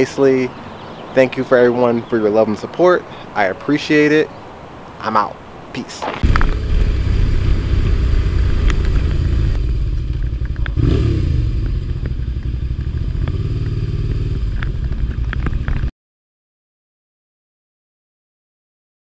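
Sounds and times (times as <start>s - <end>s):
wind rumbling on microphone: 6.0s - 15.9s
motorcycle running at low speed: 6.2s - 15.9s.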